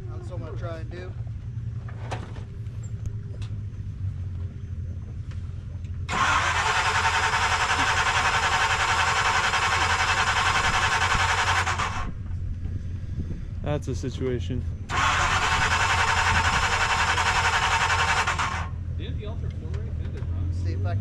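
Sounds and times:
engine idling: 0:00.0 - 0:20.8.

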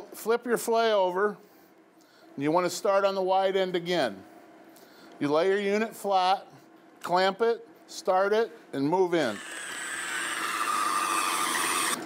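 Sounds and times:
electric fish skinner motor whine: 0:09.3 - 0:12.0.

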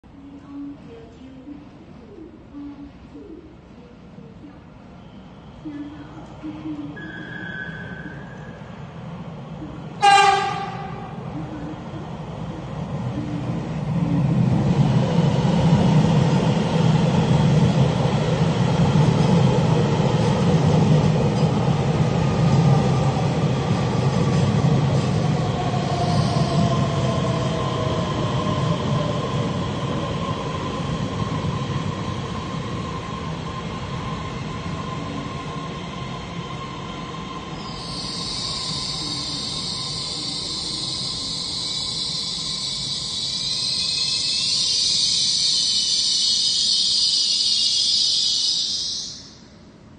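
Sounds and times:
train rumbling: 0:00.0 - 0:49.9
falling whine of train slowing: 0:02.5 - 0:49.9
train horn blast: 0:10.0 - 0:11.2.

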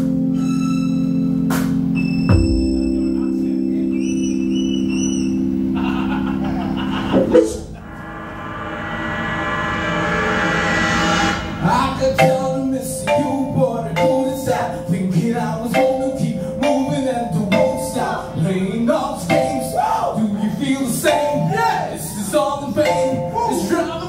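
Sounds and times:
organ chords: 0:00.0 - 0:24.0
drum and percussion hits: 0:02.3 - 0:03.2.

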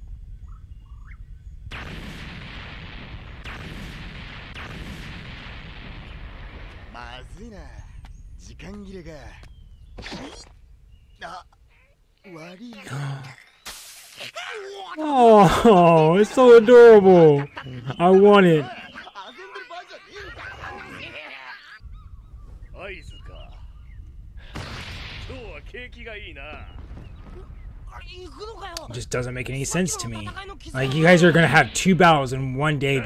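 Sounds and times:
volcano eruption rumble with crackle: 0:00.0 - 0:11.8, 0:21.8 - 0:32.2
rising yell: 0:14.4 - 0:19.6
character shouting: 0:14.9 - 0:19.0
low rumble: 0:21.8 - 0:28.2.

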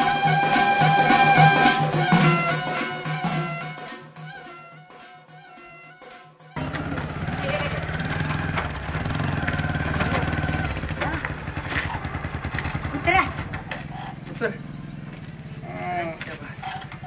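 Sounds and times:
motorcycle engine running: 0:06.6 - 0:17.0.

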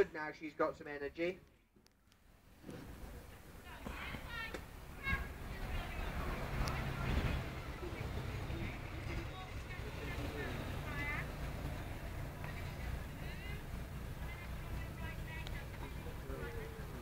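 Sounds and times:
low outdoor rumble: 0:00.0 - 0:17.0
faint indistinct voices: 0:02.6 - 0:17.0.

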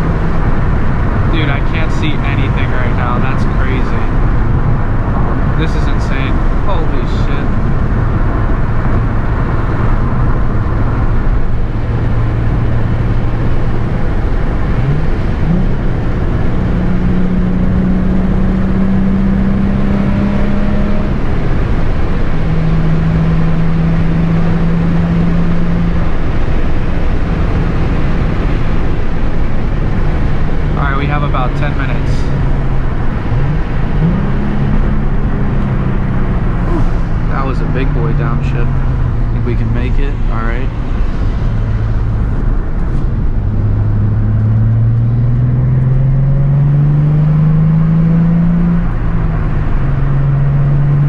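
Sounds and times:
car engine revving: 0:00.0 - 0:51.0
tyre and road noise: 0:00.0 - 0:51.0.

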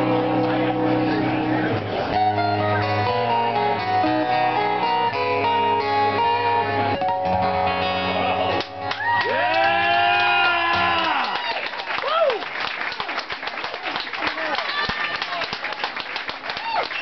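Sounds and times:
acoustic guitars playing: 0:00.0 - 0:11.2.

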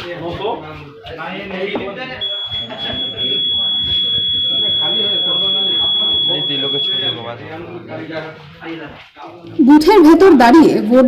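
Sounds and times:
people's voices: 0:00.0 - 0:11.0
high-pitched electronic beep: 0:02.2 - 0:07.3.

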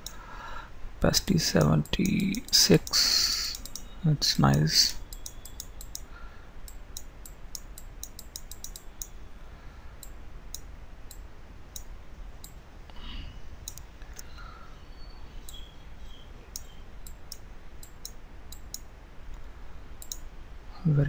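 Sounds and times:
computer mouse clicking: 0:01.6 - 0:03.9, 0:04.5 - 0:06.1, 0:06.7 - 0:09.2, 0:20.0 - 0:20.2.

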